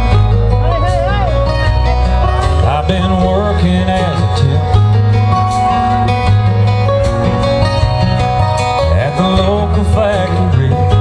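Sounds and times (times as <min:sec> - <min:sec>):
live country band playing: 0:00.0 - 0:11.0.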